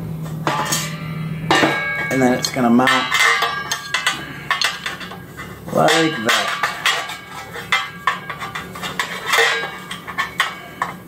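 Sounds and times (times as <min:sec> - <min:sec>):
ringing metal clanks: 0:00.2 - 0:11.0.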